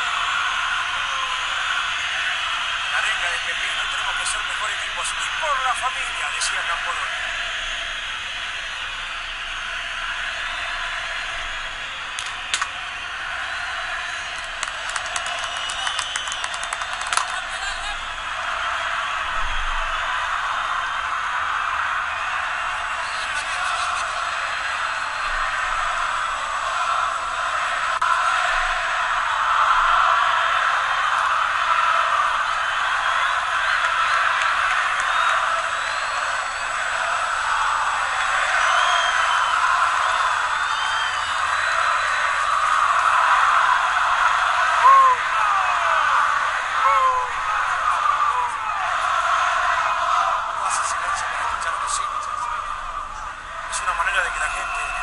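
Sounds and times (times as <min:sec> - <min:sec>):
stadium crowd singing and cheering: 0:00.0 - 0:55.0.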